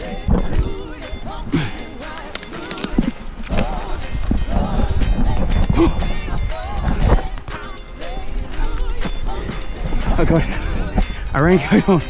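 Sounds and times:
wind rumbling on microphone: 0:00.0 - 0:07.6, 0:08.2 - 0:12.0
man grunting and breathing hard: 0:01.5 - 0:02.0.

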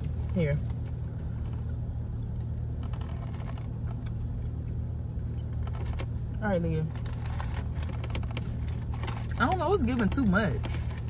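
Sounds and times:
car cabin hum: 0:00.0 - 0:11.0.

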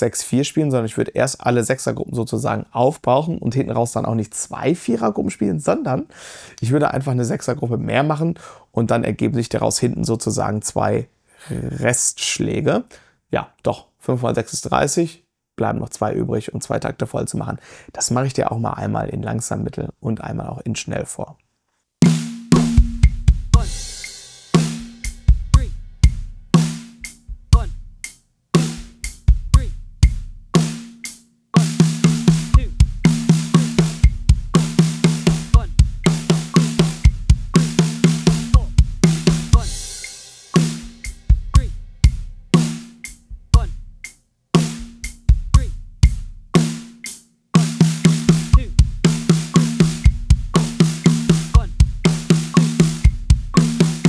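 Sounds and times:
acoustic drum kit playing: 0:22.0 - 0:54.0.

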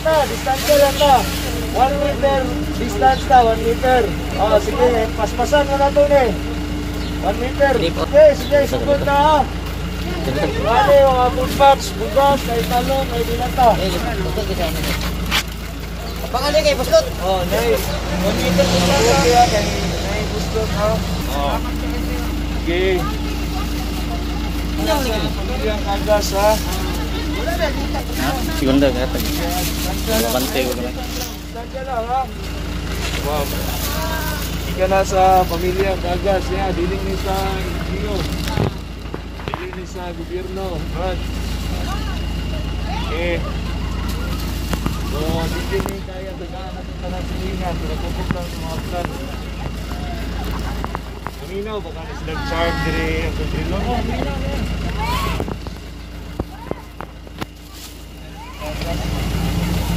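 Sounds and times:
faint voices: 0:00.0 - 0:59.9
low engine hum: 0:00.0 - 0:59.9
people talking: 0:00.0 - 0:59.9
steady low rumble: 0:00.0 - 0:59.9.

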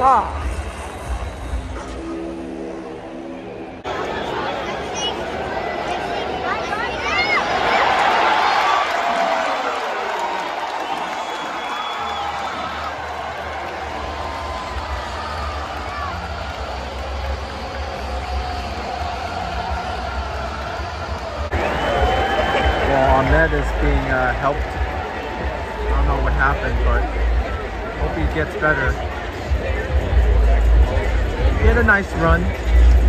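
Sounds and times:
crowd chatter: 0:00.0 - 0:33.0
crowd noise with voices: 0:00.0 - 0:33.0
crowd cheering: 0:03.2 - 0:33.0.

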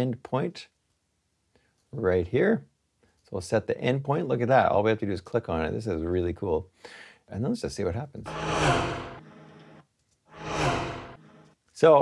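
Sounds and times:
car driving past: 0:08.3 - 0:09.8, 0:10.4 - 0:11.3.

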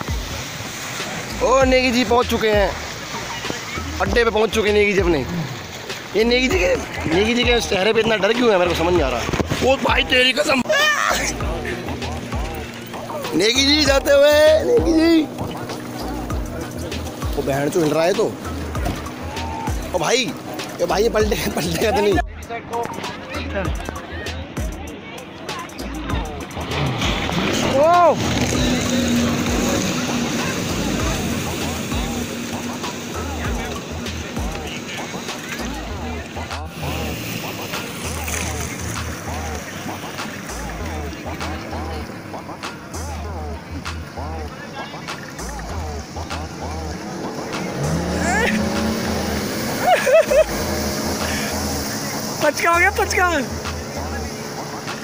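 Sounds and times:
jet ski engine accelerating: 0:00.0 - 0:55.0
rush of water: 0:00.0 - 0:55.0.

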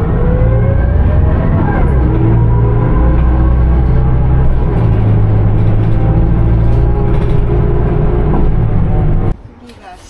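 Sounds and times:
low drone music: 0:00.0 - 0:09.4.

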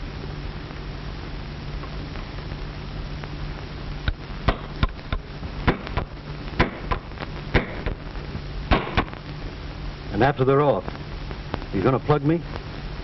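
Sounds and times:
low film soundtrack hum: 0:00.0 - 0:13.0.

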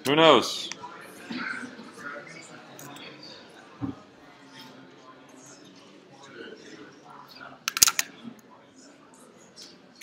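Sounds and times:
murmur of students talking: 0:00.0 - 0:10.0.

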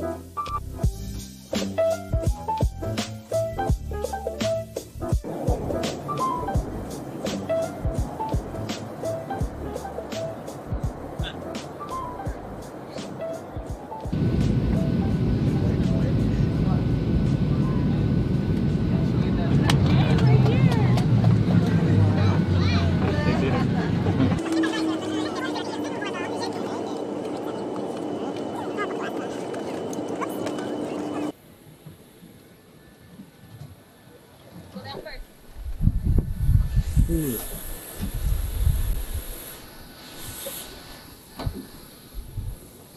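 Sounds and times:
jet cabin low rumble: 0:05.2 - 0:31.4.

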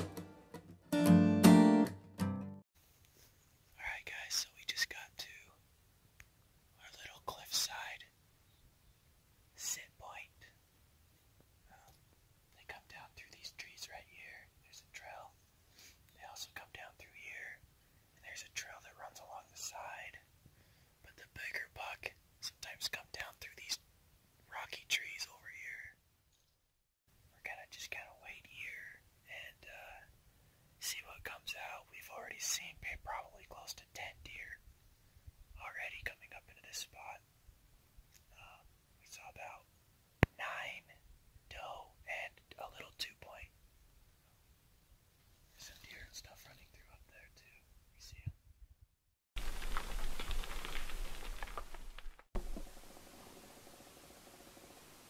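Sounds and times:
man whispering: 0:03.7 - 0:05.6, 0:06.8 - 0:08.2, 0:09.6 - 0:10.6, 0:11.7 - 0:12.0, 0:12.6 - 0:15.4, 0:16.1 - 0:17.6, 0:18.2 - 0:20.3, 0:21.0 - 0:23.8, 0:24.5 - 0:26.0, 0:27.3 - 0:30.1, 0:30.8 - 0:34.6, 0:35.6 - 0:37.3, 0:38.2 - 0:39.7, 0:40.3 - 0:43.5, 0:45.5 - 0:48.4.

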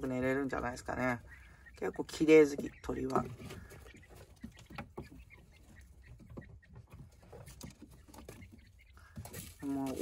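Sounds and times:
soft bird calls: 0:00.0 - 0:10.0.

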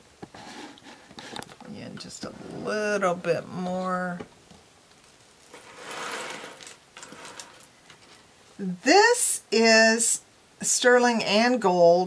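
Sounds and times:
jewelry rustling slide: 0:05.4 - 0:08.2.

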